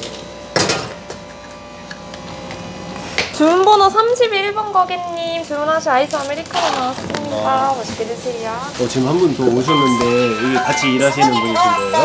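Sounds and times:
cafe equipment hum: 0.0 - 12.0.

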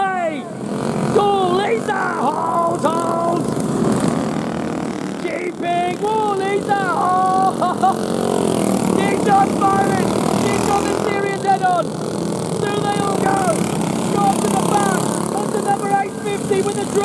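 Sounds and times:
man commentating excitedly: 0.0 - 3.5, 5.2 - 8.1, 8.7 - 11.9, 12.6 - 17.0
go-kart engines droning: 0.0 - 17.0.

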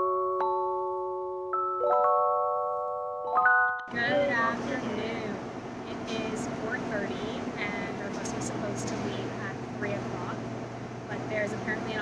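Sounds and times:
woman talking: 3.9 - 10.5, 11.1 - 12.0
low mechanical hum: 3.9 - 12.0.

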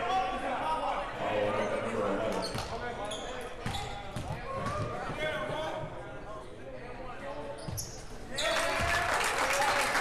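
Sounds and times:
echoing chatter of voices: 0.0 - 8.7.

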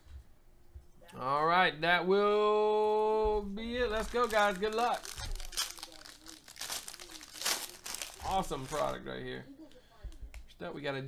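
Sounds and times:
foil wrapper crinkling and tearing: 3.9 - 9.0.

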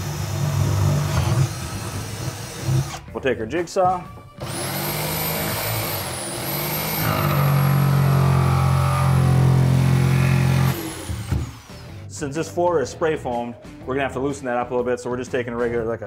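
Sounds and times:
jigsaw cutting wood: 0.0 - 3.0, 4.4 - 11.9.

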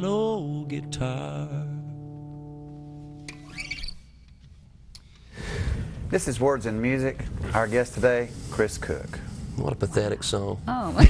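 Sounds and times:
plucked high guitar notes: 0.0 - 4.1
acoustic guitar chord ringing: 0.0 - 4.2.

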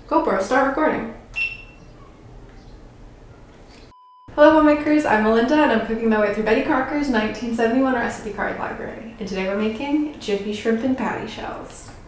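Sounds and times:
camera electronic beep: 1.4 - 1.9.

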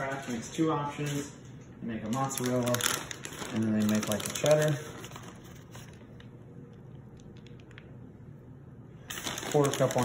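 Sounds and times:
shredded cheese pattering: 2.2 - 5.2, 9.1 - 10.0.

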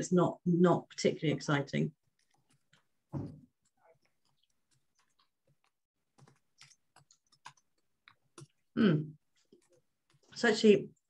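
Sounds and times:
faint chewing clicks: 2.0 - 10.4.

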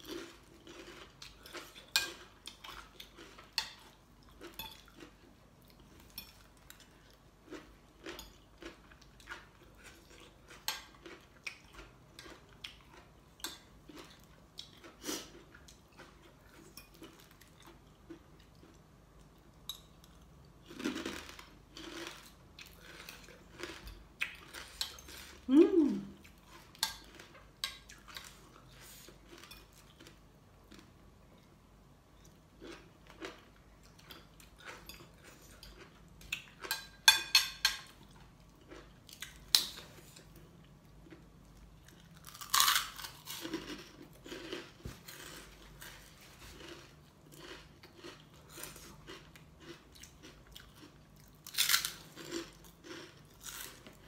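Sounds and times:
cutlery clinking on a plate: 36.7 - 38.0
chewing: 41.0 - 54.0.

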